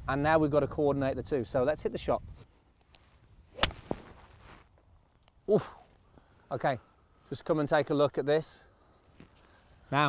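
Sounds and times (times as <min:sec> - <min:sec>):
golf club striking ball: 0:03.6 - 0:04.0.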